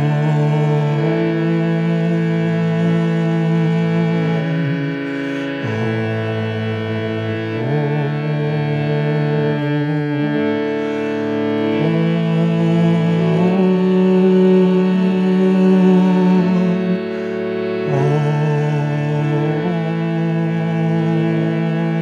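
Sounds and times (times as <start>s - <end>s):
harmonium chords: 0.0s - 22.0s
man chanting: 0.0s - 22.0s.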